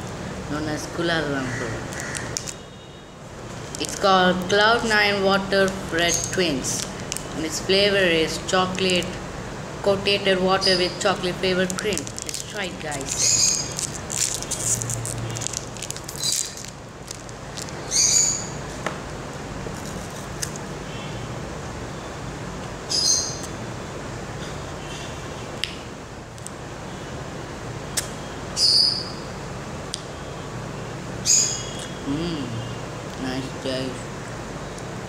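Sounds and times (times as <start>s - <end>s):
low steady hum: 0.0s - 22.9s
plastic wrapper crackling: 1.9s - 2.6s, 3.6s - 7.6s, 8.6s - 9.2s, 11.2s - 18.0s
bird high-pitched call: 17.8s - 18.6s.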